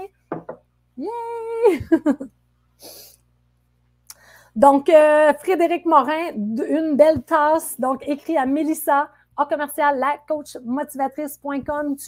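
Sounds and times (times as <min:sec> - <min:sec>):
faint breath: 0:04.1 - 0:04.6.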